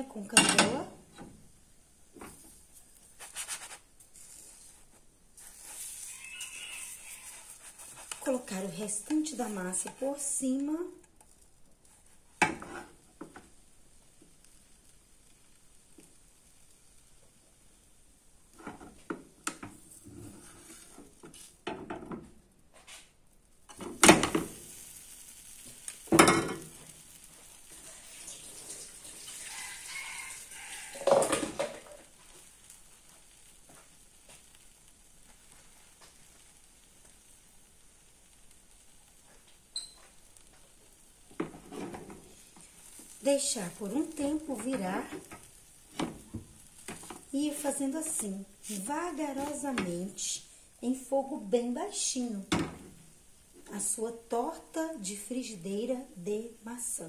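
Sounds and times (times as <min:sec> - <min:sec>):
faint batter sizzling: 0:00.0 - 0:57.0
spatula scraping frying pan: 0:03.2 - 0:10.4, 0:11.3 - 0:13.5, 0:19.6 - 0:21.5, 0:23.7 - 0:31.9, 0:41.4 - 0:50.0.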